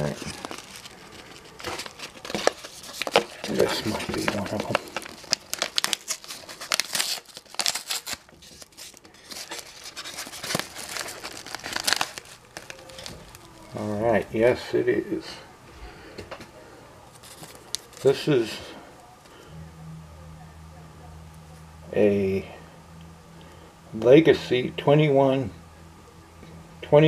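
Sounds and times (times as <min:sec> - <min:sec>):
paper envelope tearing and crinkling: 0:00.0 - 0:13.8, 0:17.1 - 0:18.2.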